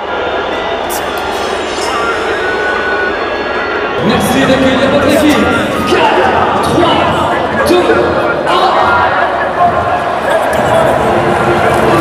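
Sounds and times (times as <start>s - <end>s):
voices in reverberant hall: 0.0s - 12.0s.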